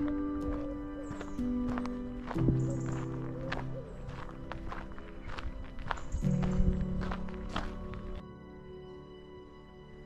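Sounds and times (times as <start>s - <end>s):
footsteps on dirt path: 0.0s - 8.4s
faint background music: 0.0s - 10.0s.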